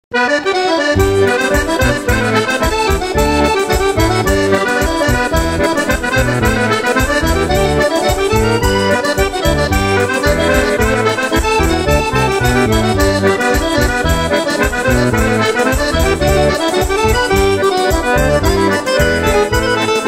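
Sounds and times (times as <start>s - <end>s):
accordion dance tune: 0.1s - 20.0s.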